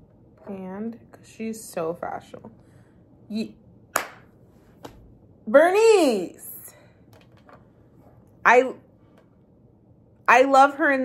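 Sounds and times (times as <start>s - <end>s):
hand clap: 3.9s - 5.0s.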